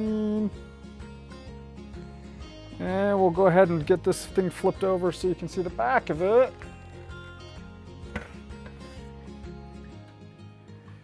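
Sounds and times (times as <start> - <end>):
faint music: 0.0 - 11.0
guitar handling knocks and rubs: 8.1 - 9.0.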